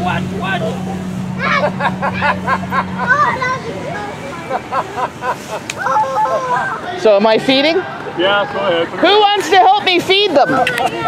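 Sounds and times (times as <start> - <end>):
blower fan humming: 0.0 - 11.0
voices: 0.0 - 11.0.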